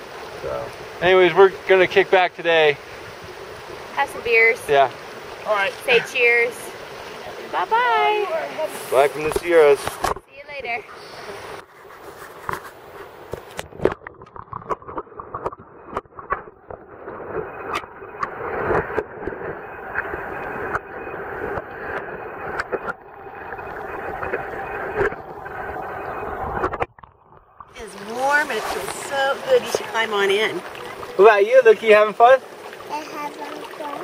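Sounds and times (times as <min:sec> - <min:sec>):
muffled underwater stream rushing: 0:00.0 - 0:34.0
underwater clicks and knocks: 0:12.3 - 0:27.8.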